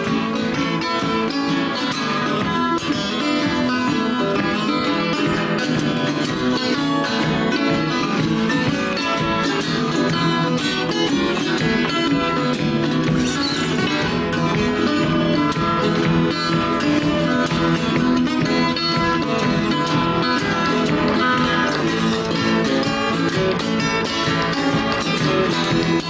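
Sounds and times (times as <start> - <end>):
acoustic guitar plucking: 0.0 - 26.0.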